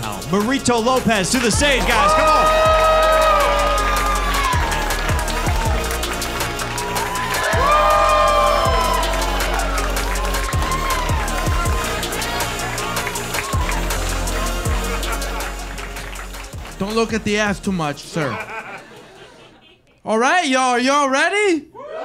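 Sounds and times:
walk-on music with steady bass: 0.0s - 17.8s
audience cheering and applauding: 1.1s - 19.2s.

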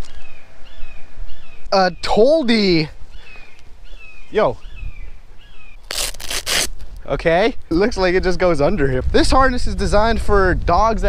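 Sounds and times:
fabric and straps rustling: 5.8s - 7.0s.

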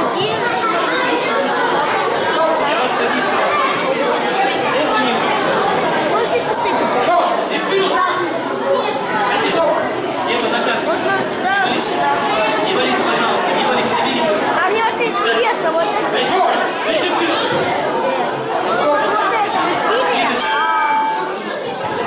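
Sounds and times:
crowd chatter in a large hall: 0.0s - 22.0s.

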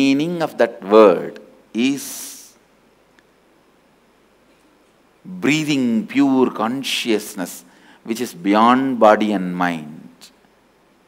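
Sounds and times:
faint tick: 3.1s - 3.3s.

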